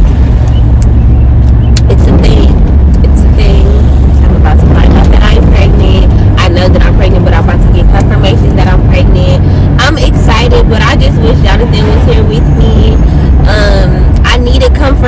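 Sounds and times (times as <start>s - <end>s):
car road and engine rumble: 0.0s - 15.0s
woman talking: 1.8s - 15.0s.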